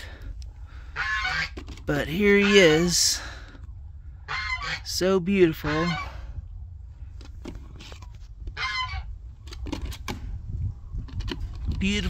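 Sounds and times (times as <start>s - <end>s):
steady low rumble: 0.0s - 12.0s
rooster squawk: 1.0s - 1.6s, 4.3s - 4.9s, 8.5s - 9.1s.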